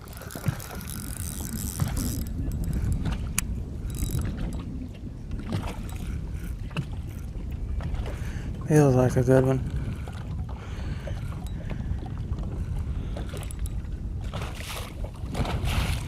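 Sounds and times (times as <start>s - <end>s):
fishing reel whirring: 0.0s - 4.7s, 5.4s - 7.4s, 10.9s - 11.9s, 13.2s - 13.8s
reel clicks: 0.0s - 8.3s, 10.7s - 15.7s
water noise: 0.0s - 16.0s
wind: 0.0s - 16.0s.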